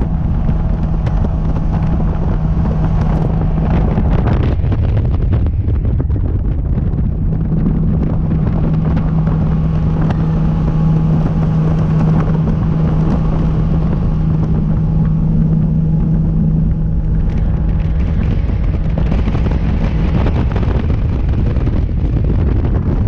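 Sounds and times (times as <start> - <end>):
outboard engine droning: 0.0 - 23.0
water noise: 0.0 - 23.0
wind rush on microphone: 0.0 - 23.0.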